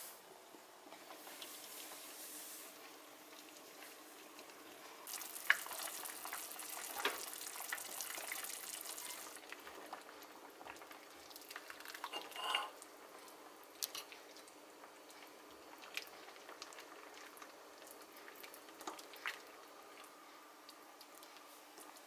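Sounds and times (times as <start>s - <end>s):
soup boiling in a pot: 0.0s - 22.0s
ladle clinking against pot: 12.0s - 12.8s.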